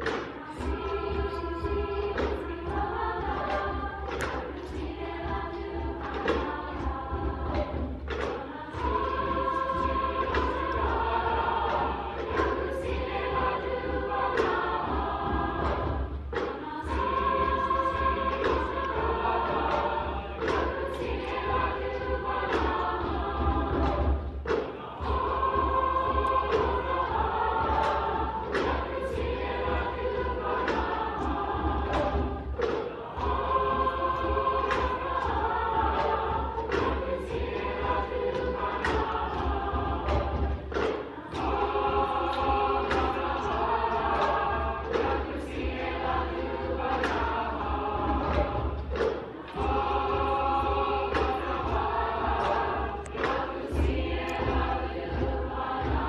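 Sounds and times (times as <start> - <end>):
choir singing in parts: 0.0 - 56.0.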